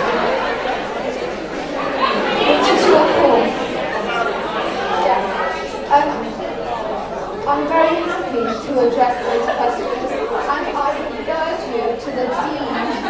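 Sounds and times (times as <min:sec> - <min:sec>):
overlapping chatter of voices: 0:00.0 - 0:13.0.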